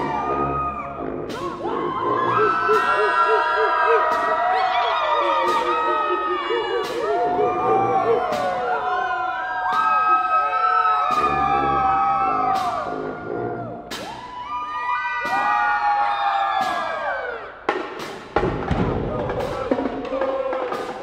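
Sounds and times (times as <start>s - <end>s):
marching band brass chords: 0.0s - 4.5s, 11.1s - 14.2s
drum and cymbal hits: 1.2s - 10.2s, 11.0s - 12.9s, 13.8s - 14.4s, 15.2s - 21.0s.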